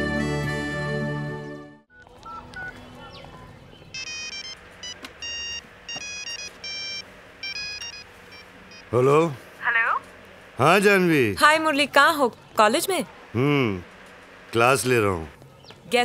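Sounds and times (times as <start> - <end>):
music: 0.0 - 1.9
mobile phone ringtone beeping: 1.9 - 2.8, 3.9 - 9.0.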